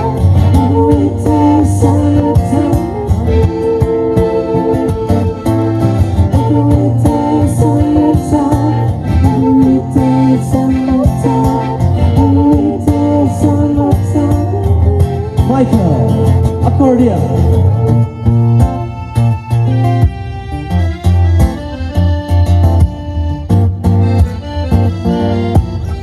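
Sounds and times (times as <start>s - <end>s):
man and woman singing: 0.0s - 5.4s, 6.3s - 17.6s
accordion: 0.0s - 26.0s
acoustic guitar strumming: 0.0s - 26.0s.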